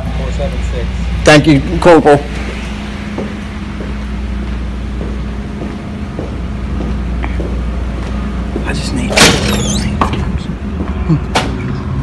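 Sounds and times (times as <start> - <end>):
steady low hum: 0.0 - 12.0
soft footsteps on hard floor: 2.4 - 8.8.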